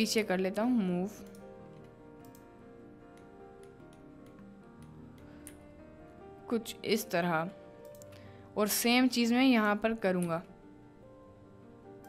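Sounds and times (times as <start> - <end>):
soft background music: 0.0 - 12.0
computer mouse and key clicks: 1.2 - 2.5, 3.1 - 5.6, 7.8 - 8.2, 10.2 - 10.5.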